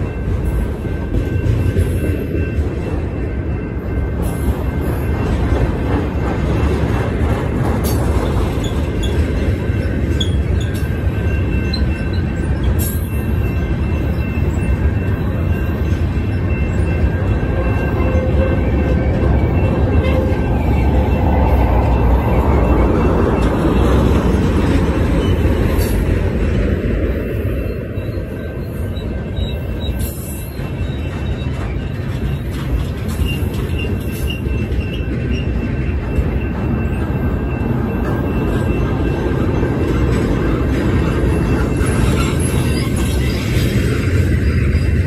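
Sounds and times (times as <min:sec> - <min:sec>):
steel wheels rumbling on rail: 0:00.0 - 0:45.0
high wheel squeal: 0:07.8 - 0:26.2, 0:26.9 - 0:45.0.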